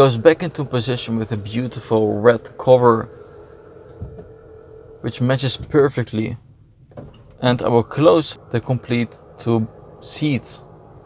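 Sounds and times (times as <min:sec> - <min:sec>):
powered seat motor humming: 0:00.0 - 0:06.2, 0:07.0 - 0:11.0
soft low thump: 0:03.9 - 0:04.3.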